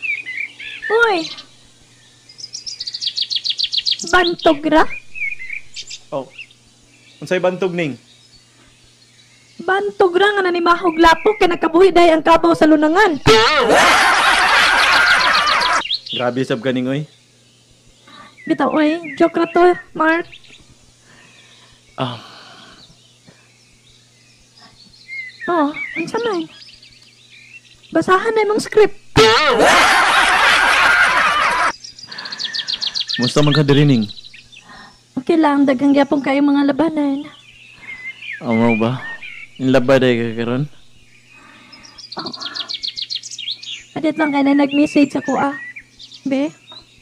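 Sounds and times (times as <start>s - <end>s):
bird chirping: 0.0s - 28.8s, 29.9s - 47.0s
faint steady hum: 0.0s - 47.0s.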